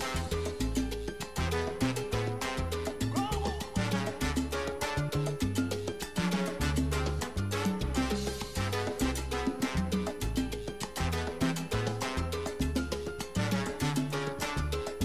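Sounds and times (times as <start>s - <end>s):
bass line: 0.0s - 15.0s
busy percussion: 0.0s - 15.0s
salsa music: 0.0s - 15.0s.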